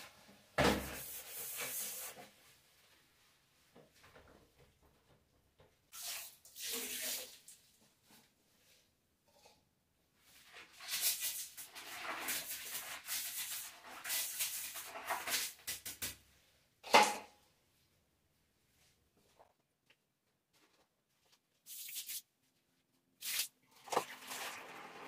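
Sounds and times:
brisk scrubbing in toilet bowl: 0:00.9 - 0:02.4, 0:10.2 - 0:15.9
water poured into toilet bowl: 0:05.9 - 0:07.8, 0:10.4 - 0:15.9, 0:23.2 - 0:25.0.

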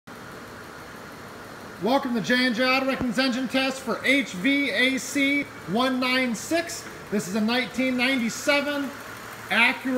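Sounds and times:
steady background hum: 0:00.2 - 0:09.9
man speaking: 0:01.8 - 0:09.9.

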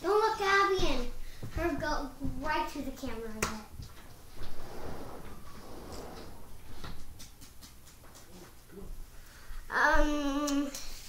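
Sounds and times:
child making wordless sounds: 0:00.0 - 0:03.7, 0:09.7 - 0:11.0
soft shuffling: 0:00.8 - 0:07.2.

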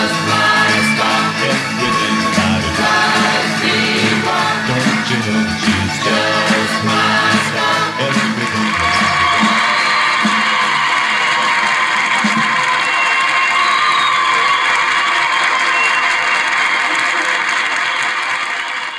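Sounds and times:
band with guitars accordion drums: 0:00.0 - 0:10.6
audience applauding: 0:00.0 - 0:18.9.

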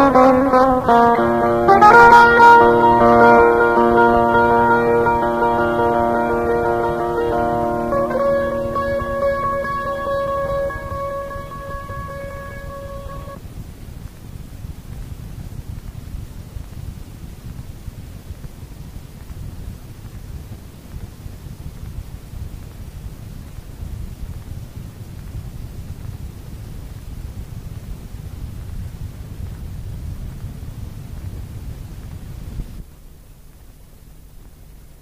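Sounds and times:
plucked string instrument note: 0:00.0 - 0:13.4
steady low rumbling noise: 0:00.0 - 0:35.0.

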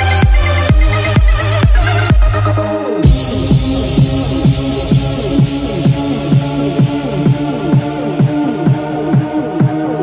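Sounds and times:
steady kick drum: 0:00.1 - 0:09.9
held low synth note: 0:03.0 - 0:08.2.

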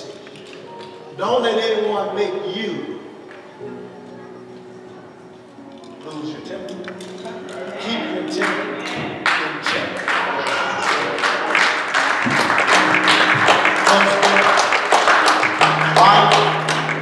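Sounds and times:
lively church music: 0:00.0 - 0:17.0.

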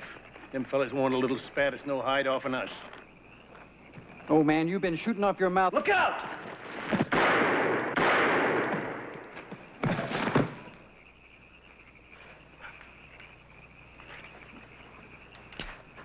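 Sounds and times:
high insect chirring: 0:00.0 - 0:05.7
revolver gunshots echoing: 0:07.1 - 0:09.4.

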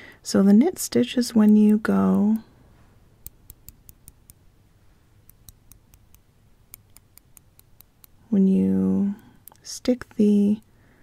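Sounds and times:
metal knitting needles clicking: 0:01.3 - 0:02.4, 0:03.2 - 0:04.4, 0:05.3 - 0:08.2, 0:09.1 - 0:09.7.

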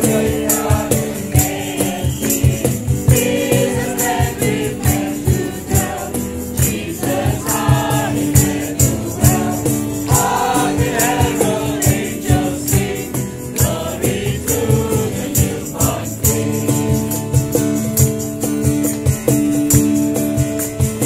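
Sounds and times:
group singing a carol: 0:00.0 - 0:17.3
accompaniment with steady beat: 0:00.0 - 0:21.0.

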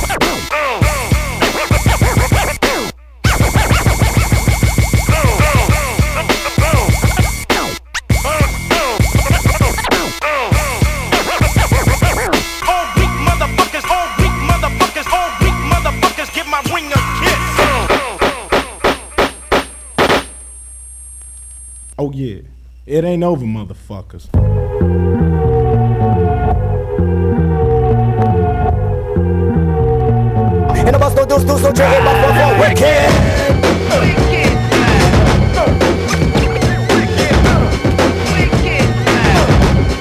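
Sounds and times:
turntable scratching: 0:00.0 - 0:20.4, 0:30.7 - 0:40.0.

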